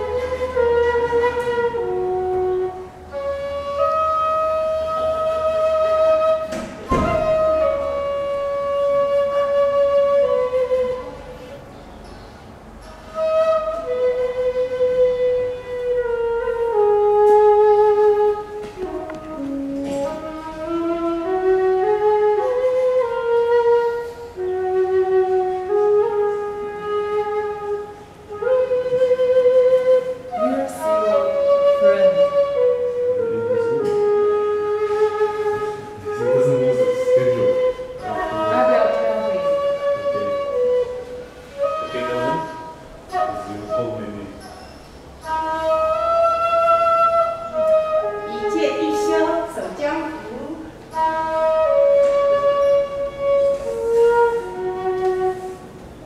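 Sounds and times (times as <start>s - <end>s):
bamboo flute melody: 0.0s - 56.0s.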